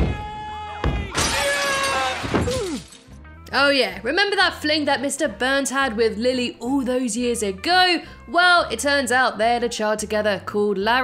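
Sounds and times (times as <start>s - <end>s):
music: 0.0s - 11.0s
glass shattering: 1.2s - 3.2s.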